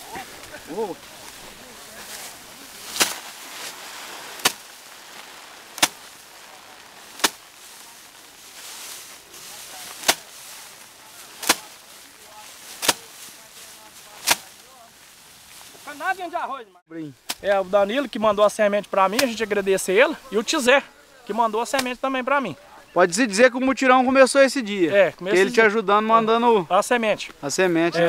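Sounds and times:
rice sheaves whacking wooden bench: 0.0s - 16.2s, 17.2s - 17.6s, 19.1s - 19.5s, 21.6s - 22.0s.

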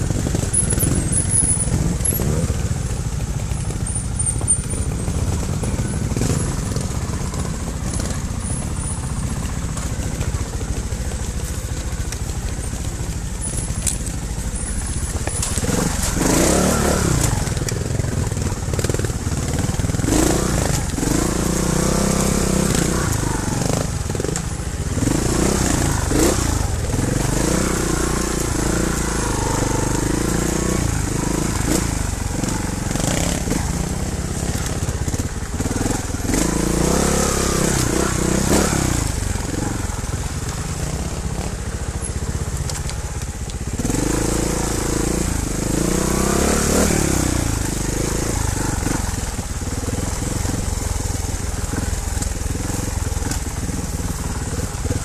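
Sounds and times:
motorcycle engine revving: 0.0s - 55.0s.

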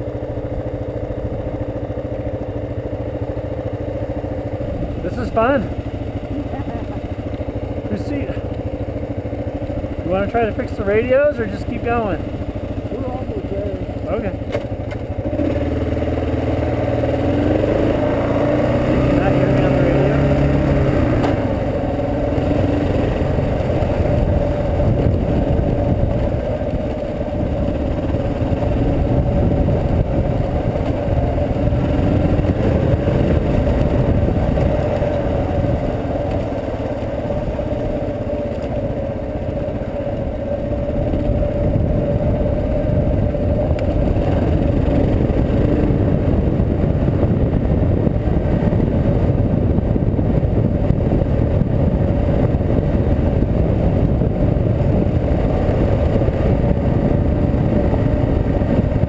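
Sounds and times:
motorcycle engine: 0.0s - 59.0s.

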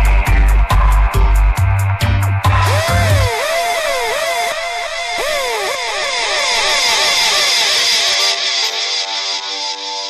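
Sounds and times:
dub siren swooping with echoes: 2.7s - 8.6s.

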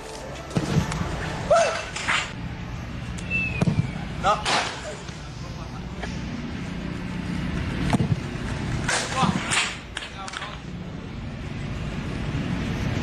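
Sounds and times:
outdoor background: 0.0s - 13.0s
players' voices: 4.1s - 6.7s, 8.8s - 10.8s.

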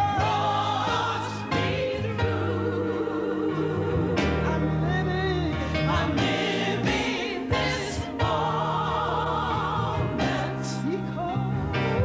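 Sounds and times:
gospel group singing in harmony: 0.0s - 12.0s.

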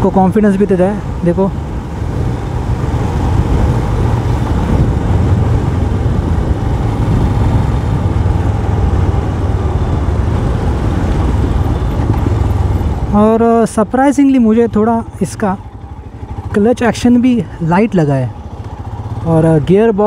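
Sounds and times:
motorcycle engine running: 0.0s - 13.7s, 14.3s - 20.0s
wind and road noise: 0.0s - 20.0s.

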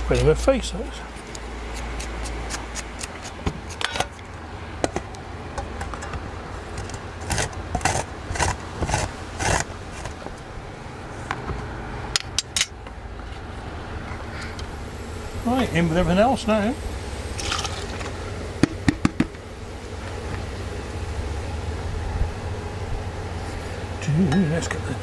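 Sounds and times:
low steady hum: 0.0s - 25.0s
knife scraping ginger: 1.1s - 4.2s, 6.7s - 10.2s
grating on metal grater: 7.2s - 10.2s.

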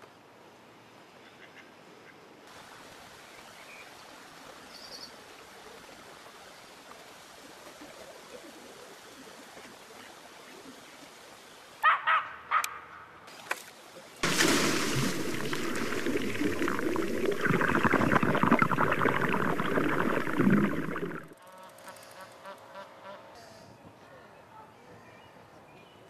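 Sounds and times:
bait rushing into water: 14.2s - 21.4s.

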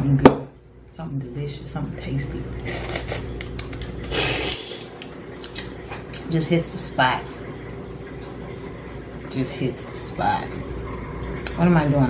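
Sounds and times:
mouth noises while chewing: 2.6s - 5.7s.

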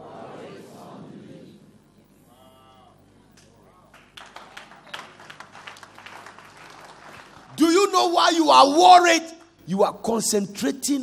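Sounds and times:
scattered hand claps: 3.4s - 7.6s.

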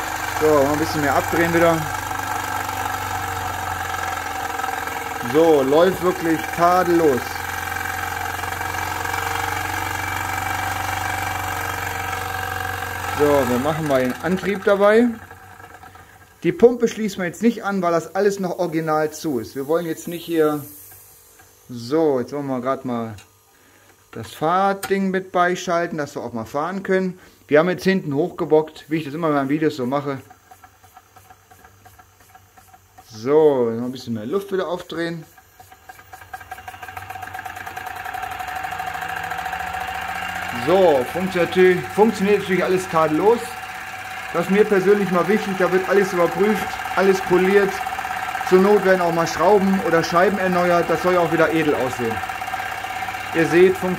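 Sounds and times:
model steam engine exhaust beat: 0.0s - 21.5s, 29.0s - 53.9s
air compressor humming: 0.0s - 53.9s
steady whine: 0.0s - 53.9s.

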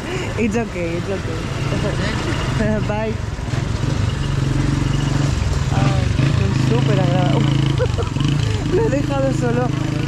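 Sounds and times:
busy street noise: 0.0s - 10.0s
motorcycle engine puttering: 2.5s - 10.0s.

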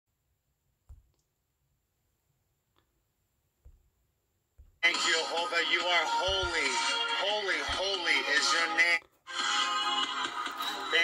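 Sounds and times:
fingertip tapping touchscreen: 6.1s - 6.8s, 7.6s - 8.0s.

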